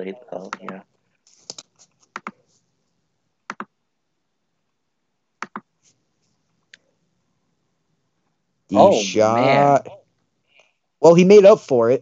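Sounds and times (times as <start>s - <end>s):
computer mouse clicks: 0.5s - 2.4s, 3.5s - 3.7s, 5.4s - 5.7s.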